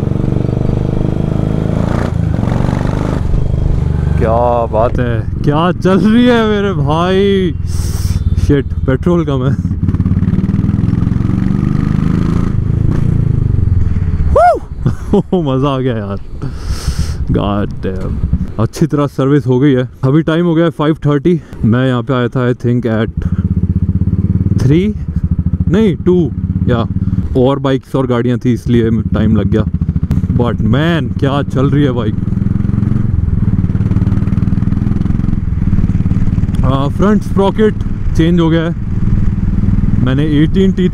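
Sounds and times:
motorcycle engine and exhaust: 0:00.0 - 0:40.9
motorcycle engine thumping: 0:29.7 - 0:30.5.

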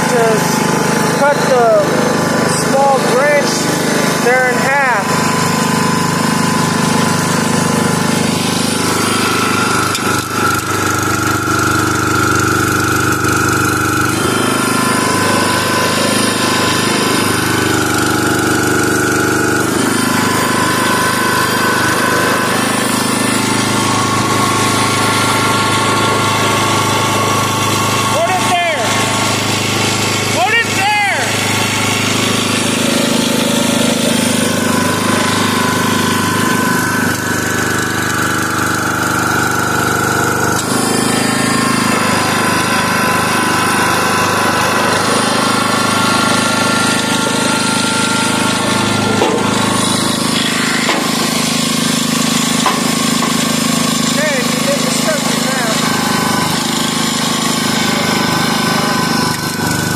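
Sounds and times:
log splitter engine running: 0:00.0 - 0:59.9.

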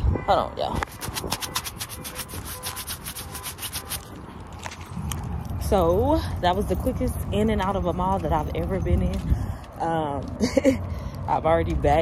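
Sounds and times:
scratchy rubs on phone microphone: 0:00.7 - 0:04.1.

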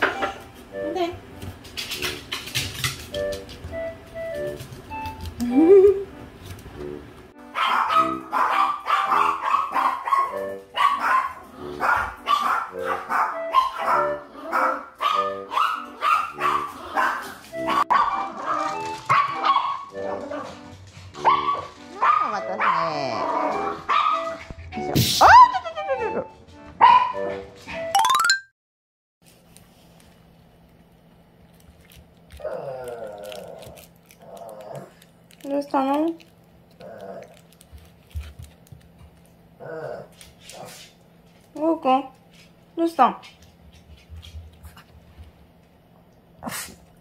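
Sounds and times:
small dogs barking: 0:07.6 - 0:20.5, 0:21.2 - 0:24.4, 0:26.8 - 0:27.2.

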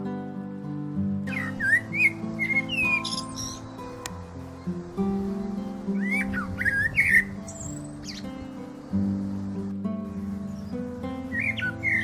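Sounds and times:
background music low notes: 0:00.0 - 0:12.0.

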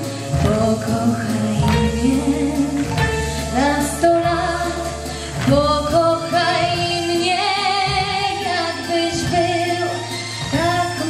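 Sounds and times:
musical accompaniment: 0:00.0 - 0:11.0
woman singing a slow ballad: 0:00.0 - 0:11.0.

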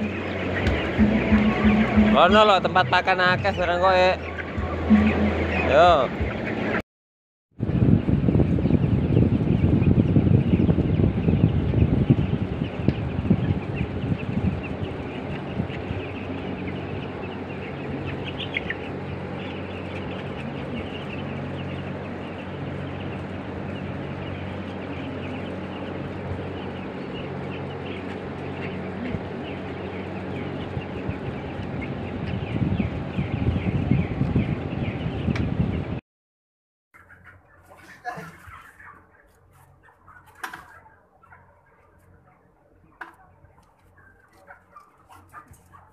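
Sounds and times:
rough low noise: 0:00.0 - 0:06.7
steady low hum: 0:00.0 - 0:06.7, 0:07.6 - 0:36.0
chicks peeping: 0:00.0 - 0:06.8, 0:07.6 - 0:36.0, 0:37.0 - 0:45.9.

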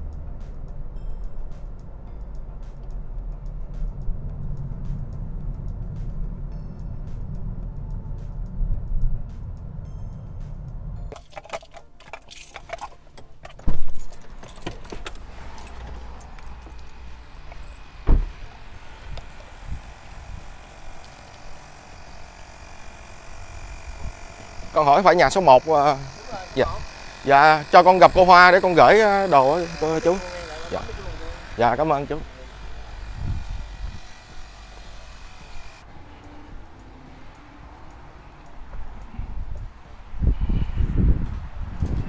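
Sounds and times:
keys jingling: 0:11.1 - 0:16.9
loud thump: 0:18.0 - 0:18.4.

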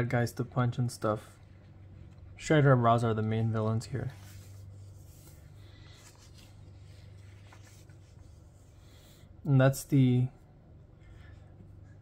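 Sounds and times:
low steady hum: 0:00.0 - 0:12.0
page turning paper rustle: 0:03.9 - 0:08.5.

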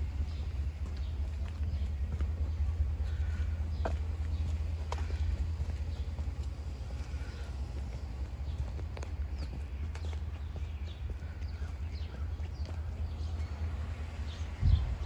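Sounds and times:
footsteps on concrete: 0:00.0 - 0:14.4
low microphone rumble: 0:00.0 - 0:15.0.

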